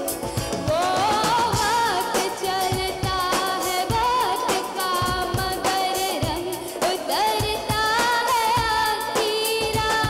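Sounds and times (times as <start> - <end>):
drum kit beat: 0.0 - 10.0
live band playing: 0.0 - 10.0
woman singing into microphone: 0.0 - 10.0.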